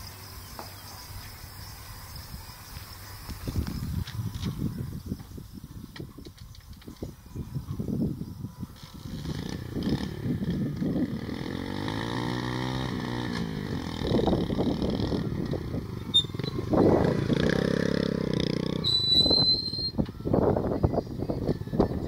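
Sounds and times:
small motorcycle engine revving: 0:08.8 - 0:20.0.

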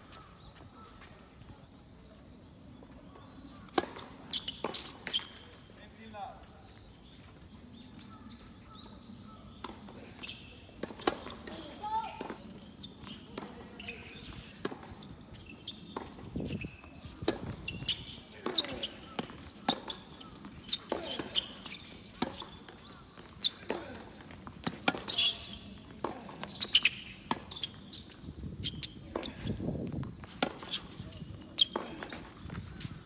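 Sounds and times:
tennis ball bouncing on court: 0:09.5 - 0:15.0, 0:15.9 - 0:31.0, 0:31.6 - 0:32.8
racket striking tennis ball: 0:20.8 - 0:22.6.

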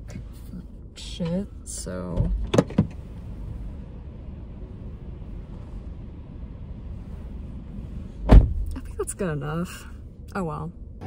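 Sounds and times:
car engine low rumble: 0:00.0 - 0:11.0.

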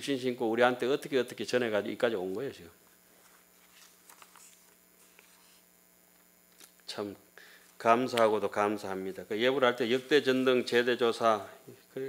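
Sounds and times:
man speaking: 0:00.0 - 0:02.8, 0:06.9 - 0:12.0
faint electrical mains hum: 0:00.0 - 0:12.0.

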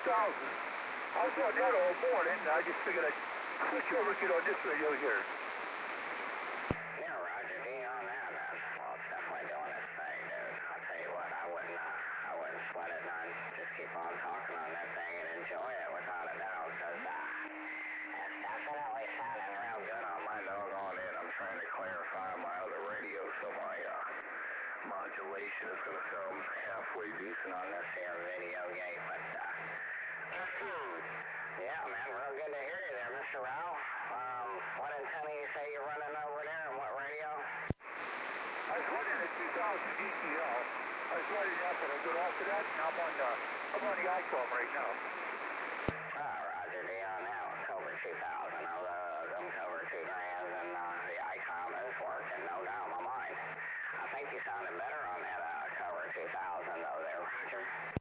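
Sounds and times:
radio hiss: 0:00.0 - 0:58.0
tinny radio voices: 0:00.0 - 0:58.0.

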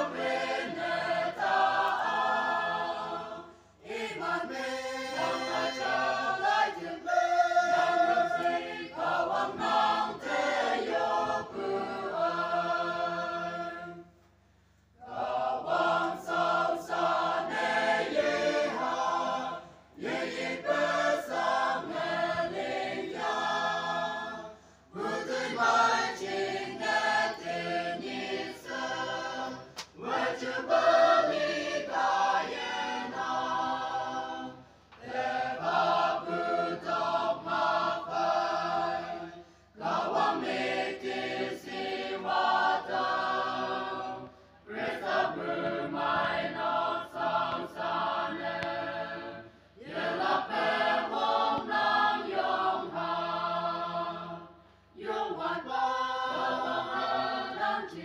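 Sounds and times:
choir singing: 0:00.0 - 0:14.2, 0:15.0 - 0:58.0.

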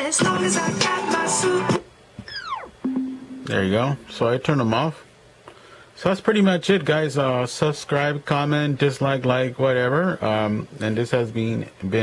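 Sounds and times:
pop song through speaker: 0:00.0 - 0:02.3
falling electronic tone: 0:02.3 - 0:03.5.

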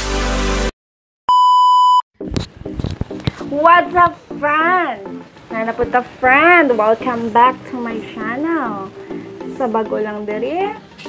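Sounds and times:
steady electronic beep: 0:01.3 - 0:02.0.

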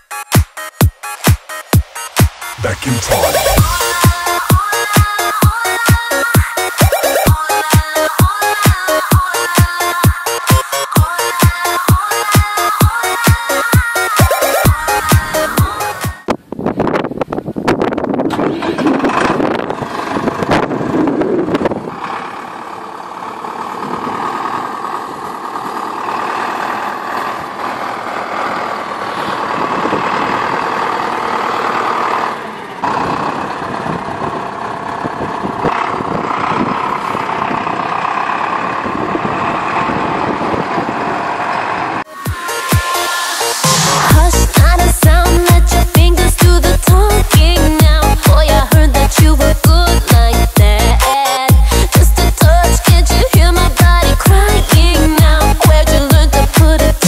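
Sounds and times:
tractor diesel engine running: 0:00.6 - 0:57.0.

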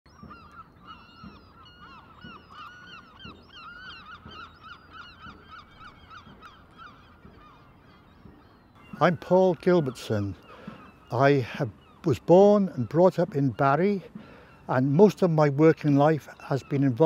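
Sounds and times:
flock of birds calling: 0:00.1 - 0:17.0.

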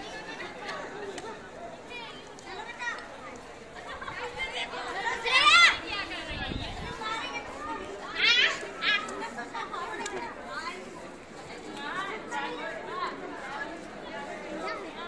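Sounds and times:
indistinct chatter of voices: 0:00.0 - 0:15.0.

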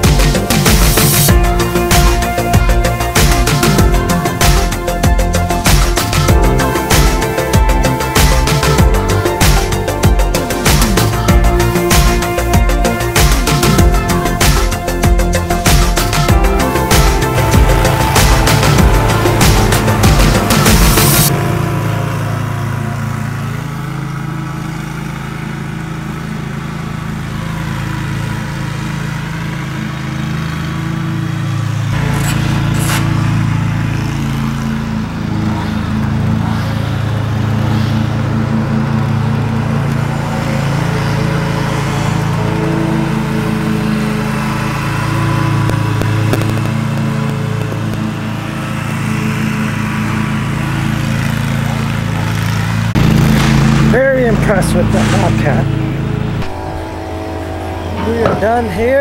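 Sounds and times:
riding lawn mower engine: 0:00.0 - 0:59.0.

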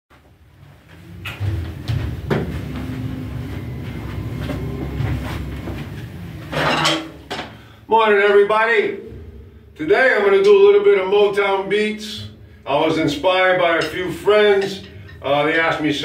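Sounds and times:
low rumble: 0:00.8 - 0:06.6, 0:08.8 - 0:11.1.

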